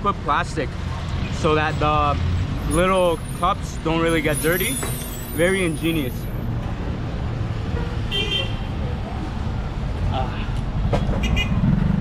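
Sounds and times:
traffic engines rumbling: 0.0s - 12.0s.

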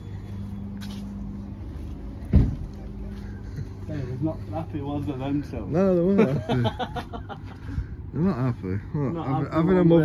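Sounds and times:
steady low hum: 0.0s - 10.0s
loud thump: 2.3s - 2.6s.

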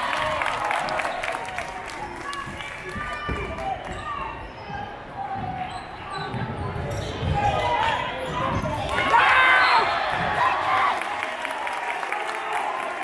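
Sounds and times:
crowd voices and shouts: 0.0s - 13.0s.

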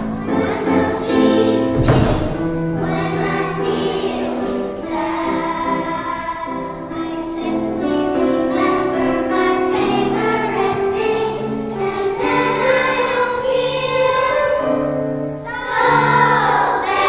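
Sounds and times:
children's choir singing: 0.0s - 17.0s
piano accompaniment: 0.0s - 17.0s.

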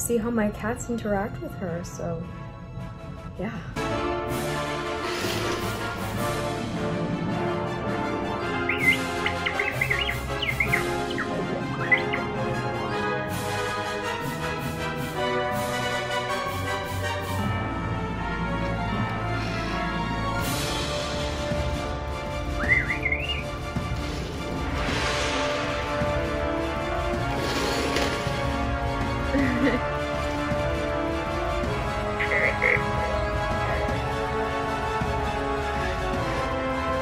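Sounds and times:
background music: 0.0s - 37.0s
robot beeps and whistles: 8.7s - 12.3s, 22.6s - 23.4s.

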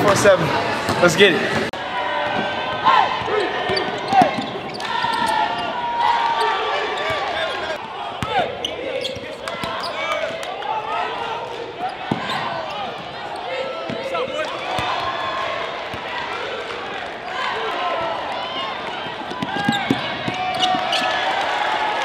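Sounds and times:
sneakers squeaking: 0.7s - 15.1s, 17.2s - 21.6s
basketball bouncing on court: 19.0s - 21.0s.

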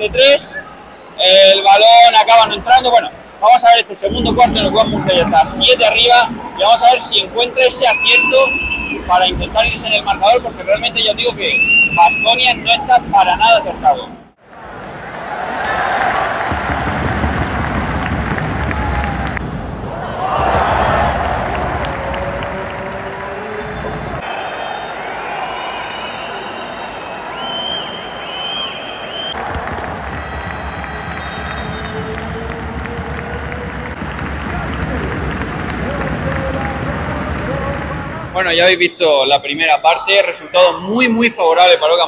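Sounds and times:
crowd cheering and clapping: 14.5s - 38.6s.

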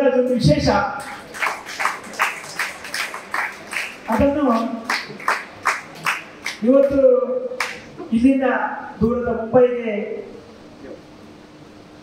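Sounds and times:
rhythmic hand clapping: 1.0s - 7.0s, 7.6s - 7.9s.

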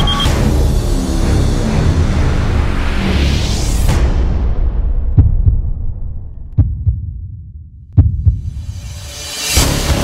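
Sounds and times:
heartbeat double thumps: 4.8s - 8.7s.

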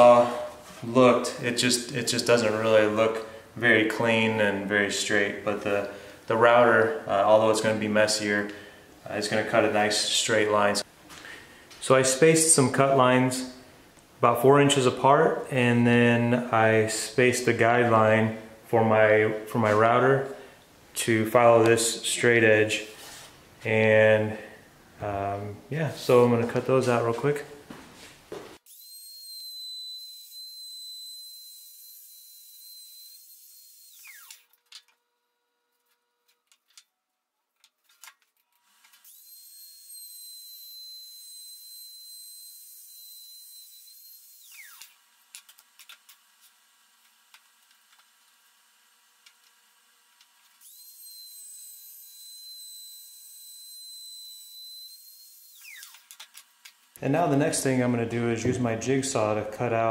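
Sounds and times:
electric router whining: 28.7s - 34.4s, 38.9s - 46.1s, 50.2s - 56.8s.

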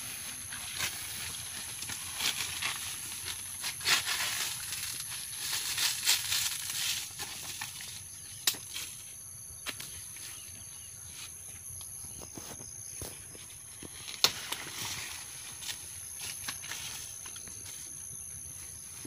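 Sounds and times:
dry leaves rustling and tearing: 0.1s - 9.0s, 13.8s - 17.8s.

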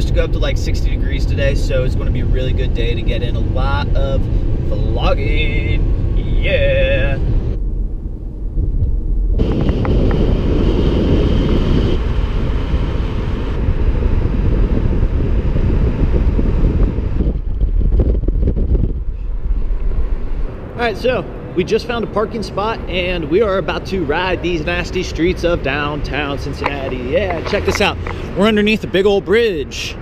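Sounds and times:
road rumble: 0.0s - 30.0s
wind buffeting microphone: 0.0s - 30.0s.

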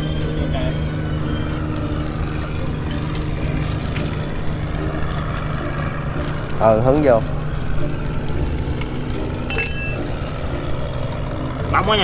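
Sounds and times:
low engine drone: 0.0s - 12.0s
spanner clinking on metal bolt: 9.5s - 10.4s.

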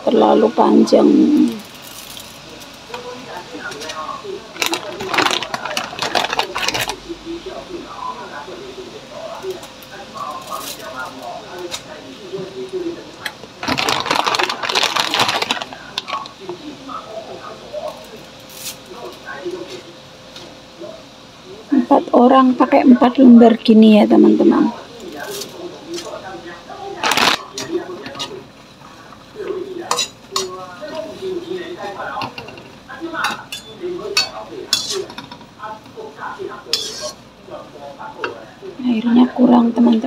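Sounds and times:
faint voices: 0.0s - 40.0s
dry noodles rustling and crackling: 1.4s - 7.4s, 10.2s - 12.0s, 13.5s - 16.8s, 24.9s - 32.2s.

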